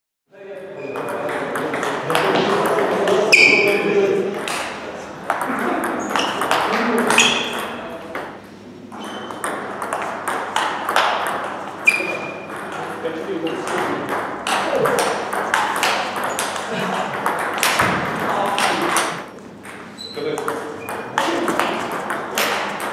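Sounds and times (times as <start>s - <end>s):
voices in a large hall: 0.3s - 22.9s.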